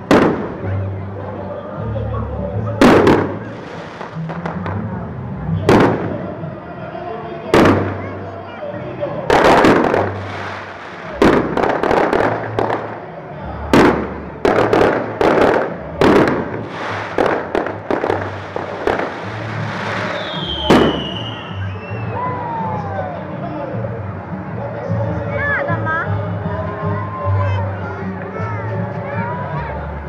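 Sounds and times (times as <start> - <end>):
fireworks bangs with crackling: 0.0 - 0.8, 2.8 - 5.0, 5.6 - 6.4, 7.5 - 8.4, 9.2 - 22.0
falling firework whistle: 18.5 - 22.2.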